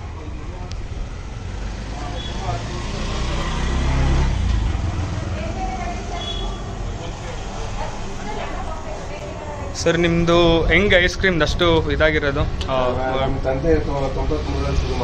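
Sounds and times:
indistinct voices: 0:00.0 - 0:15.0.

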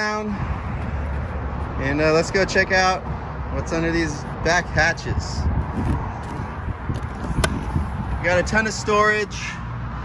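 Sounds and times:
steady low rumble: 0:00.0 - 0:08.8.

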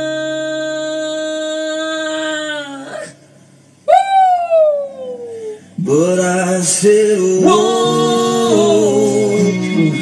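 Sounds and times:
music with singing: 0:05.6 - 0:10.0.

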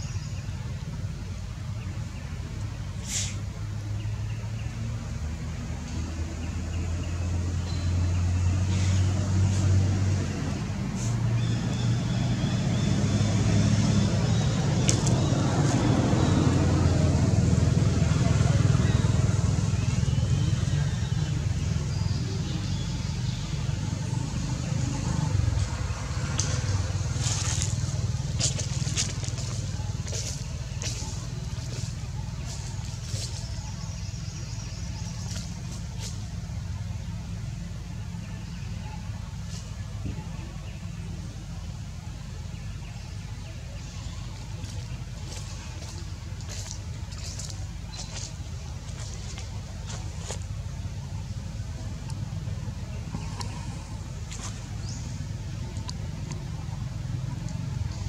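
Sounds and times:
low motor rumble: 0:00.0 - 0:58.0.

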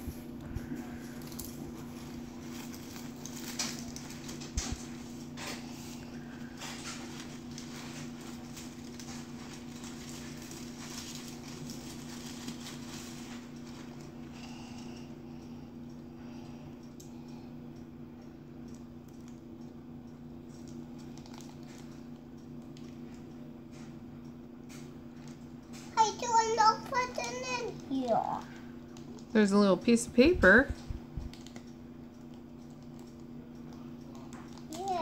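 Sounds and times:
steady low hum: 0:00.0 - 0:35.0
aluminium foil crinkling and tearing: 0:00.9 - 0:05.0, 0:06.5 - 0:14.0, 0:20.6 - 0:21.9.

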